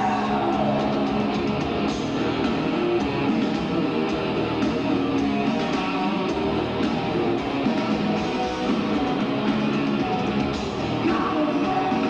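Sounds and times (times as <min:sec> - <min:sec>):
drum kit: 0:00.0 - 0:12.0
electric guitars: 0:00.0 - 0:12.0
hard rock band playing live: 0:00.0 - 0:12.0.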